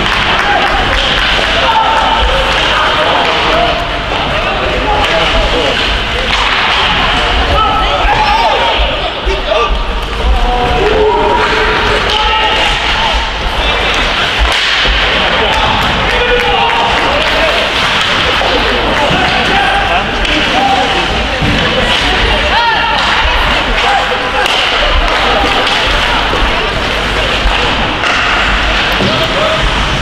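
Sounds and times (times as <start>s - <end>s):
sticks and puck clacking: 0.0s - 9.2s, 9.8s - 30.0s
players shouting: 0.0s - 29.8s.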